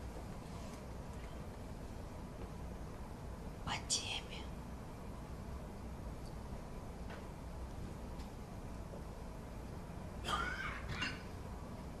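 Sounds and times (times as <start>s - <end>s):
low room hum: 0.0s - 12.0s
person whispering: 3.7s - 4.5s.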